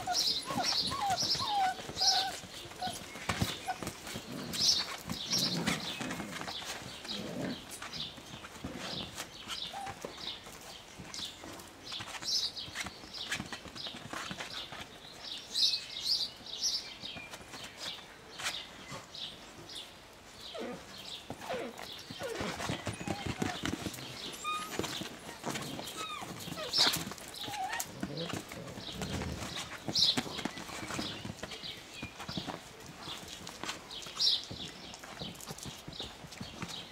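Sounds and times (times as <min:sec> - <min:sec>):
puppies squeaking: 0:00.0 - 0:04.2, 0:21.3 - 0:28.5
puppies scuffling paws: 0:00.0 - 0:36.9.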